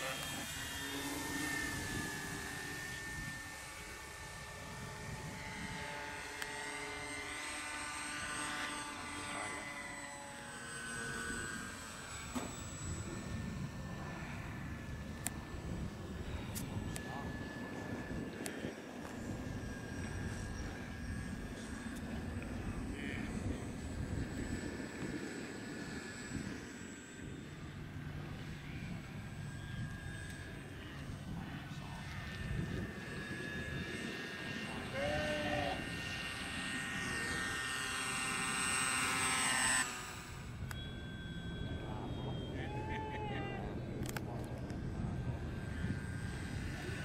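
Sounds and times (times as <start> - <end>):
wind rumbling on microphone: 0.0 - 7.1, 11.1 - 37.6, 40.2 - 47.0
model airplane motor whining: 0.0 - 47.0.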